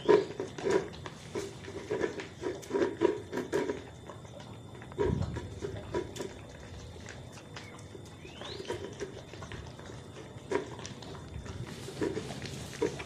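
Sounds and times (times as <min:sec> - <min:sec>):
puppies crunching dry kibble: 0:00.0 - 0:13.0.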